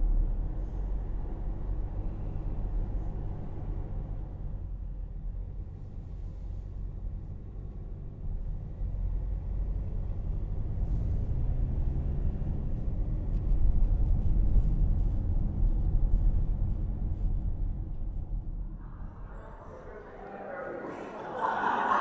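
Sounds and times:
vehicle rumble from inside: 0:00.0 - 0:20.0.

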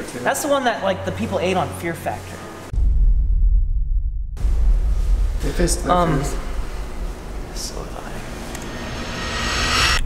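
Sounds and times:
rising airy whoosh: 0:02.7 - 0:10.0.

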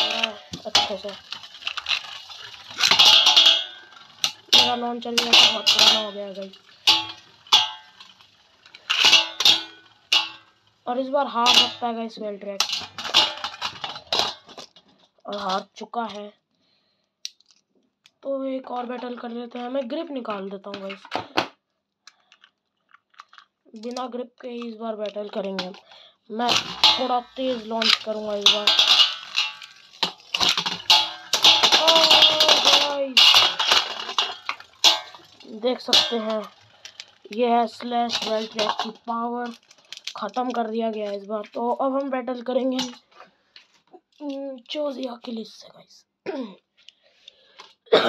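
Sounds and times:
spinning tops clattering in metal pan: 0:00.0 - 0:10.6, 0:11.2 - 0:12.0, 0:12.6 - 0:14.6, 0:25.4 - 0:25.8, 0:26.4 - 0:41.6, 0:42.6 - 0:43.0.

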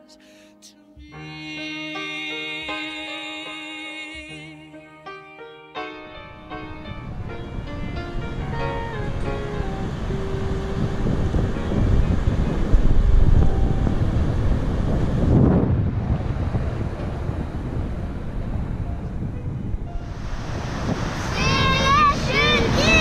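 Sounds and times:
piano background music: 0:00.0 - 0:23.0
wind buffeting microphone: 0:06.3 - 0:23.0
waterfall roaring: 0:20.0 - 0:23.0.

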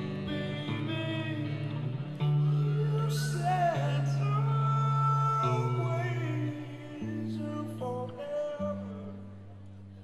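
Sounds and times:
electric guitar chords: 0:00.0 - 0:10.0.

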